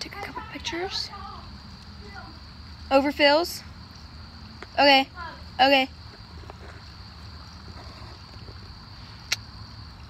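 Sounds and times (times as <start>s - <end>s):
campfire wood popping: 0.0s - 10.0s
low outdoor rumble: 0.0s - 10.0s.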